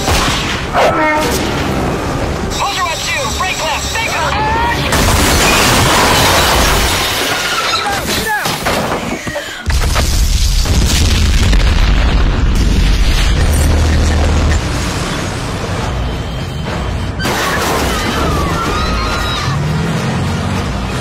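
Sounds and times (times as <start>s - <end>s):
explosion boom rumbling: 9.7s - 14.6s.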